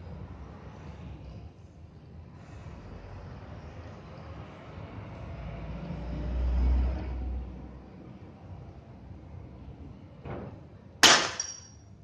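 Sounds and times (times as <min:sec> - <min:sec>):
vehicle engine rumble passing: 0:00.0 - 0:10.3
outdoor background noise: 0:00.0 - 0:12.0.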